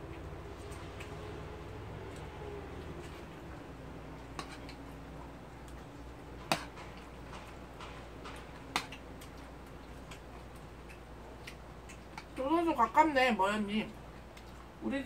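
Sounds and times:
eating noodles: 0.0 - 12.4
faint steady hum: 0.0 - 15.0.

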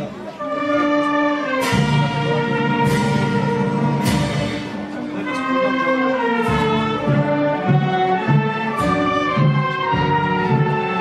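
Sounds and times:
brass band playing slow piece: 0.0 - 11.0.

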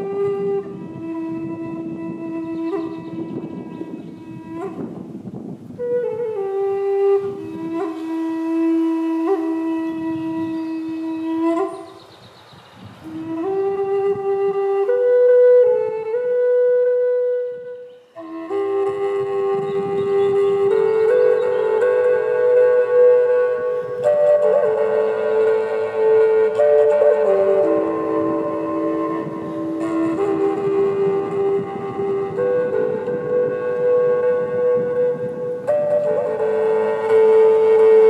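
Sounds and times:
wooden flute melody: 0.0 - 38.0.

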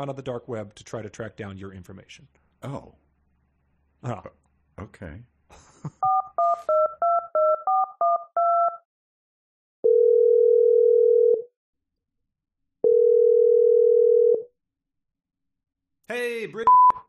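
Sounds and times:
touch-tone keypad beeps: 6.0 - 8.8
phone ringback tones: 9.8 - 11.4, 12.8 - 14.4.

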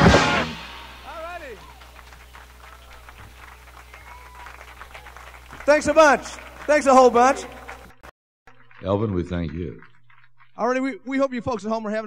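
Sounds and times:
steady low hum: 0.1 - 8.8
scattered audience clapping: 0.9 - 11.7.

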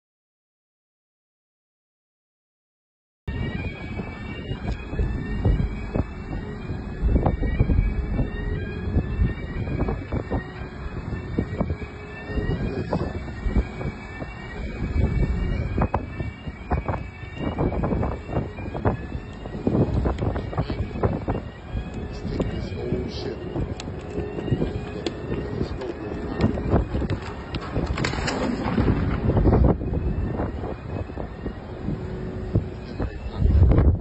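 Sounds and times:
whooping siren: 3.3 - 34.0.

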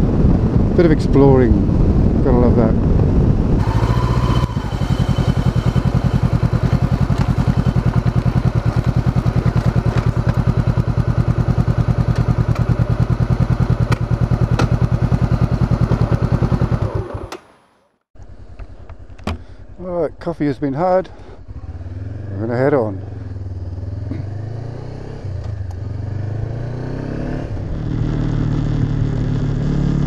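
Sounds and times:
motorcycle engine idling: 3.6 - 17.3, 18.2 - 24.2.

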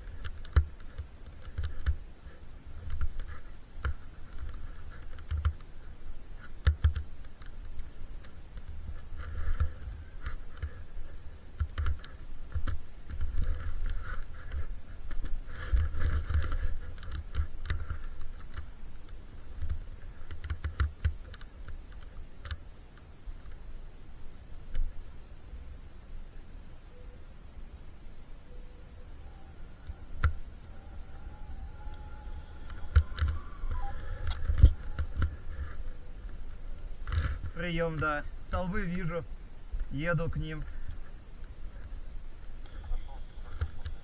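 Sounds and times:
wind rumbling on microphone: 0.0 - 26.4, 28.8 - 44.0
faint electronic radio tones: 25.1 - 39.3, 39.9 - 44.0.

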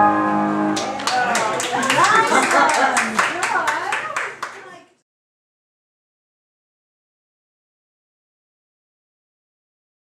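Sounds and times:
small audience clapping: 0.8 - 5.0.

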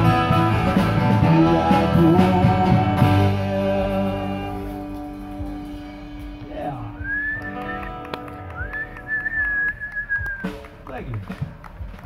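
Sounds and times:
person whistling loudly: 7.0 - 10.6.

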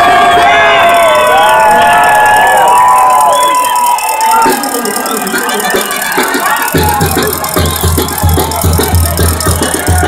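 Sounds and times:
banda band playing: 4.2 - 10.0
heavy pulsing bass line: 4.4 - 10.0.

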